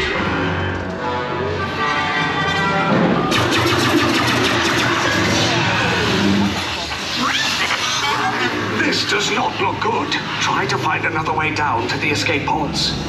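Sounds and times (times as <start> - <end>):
music with sci-fi sound effects: 0.0 - 13.0.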